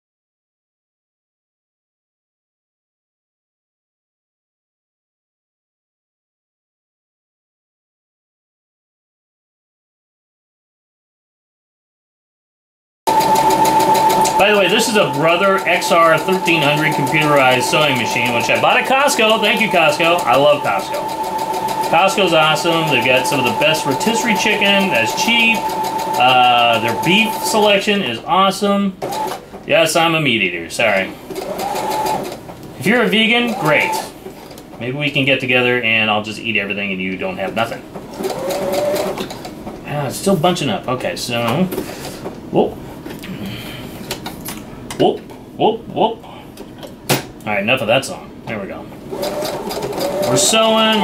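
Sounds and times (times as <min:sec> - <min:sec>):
sewing machine stitching: 0:13.1 - 0:27.8, 0:29.0 - 0:29.4, 0:31.3 - 0:32.4, 0:33.0 - 0:34.1, 0:38.1 - 0:39.6, 0:49.1 - 0:51.0.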